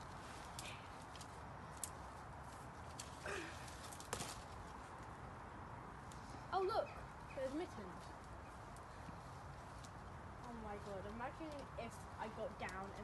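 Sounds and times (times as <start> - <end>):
faint scattered clicks: 12.5 - 13.0.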